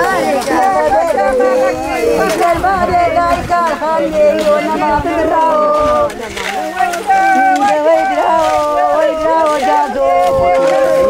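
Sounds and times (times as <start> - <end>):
mourners wailing a lament: 0.0 - 11.0.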